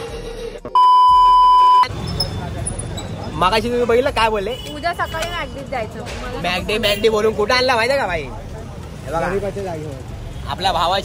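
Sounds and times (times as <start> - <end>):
steady high test tone beep: 0.8 - 1.9
city street traffic hum: 1.6 - 11.0.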